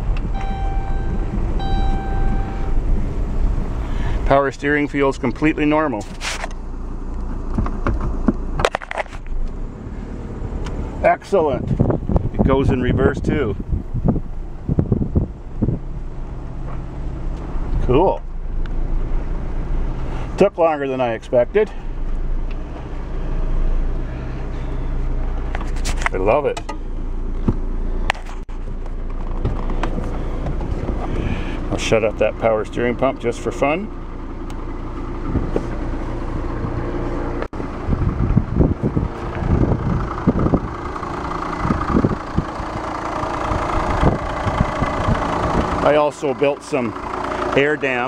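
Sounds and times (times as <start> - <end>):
diesel engine rumble: 0.0 - 48.0
sharp clicks and knocks: 7.2 - 9.6, 25.5 - 26.8.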